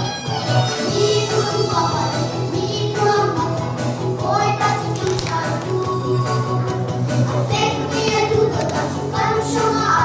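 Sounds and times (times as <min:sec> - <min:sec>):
musical accompaniment: 0:00.0 - 0:10.0
girls singing together: 0:07.3 - 0:10.0.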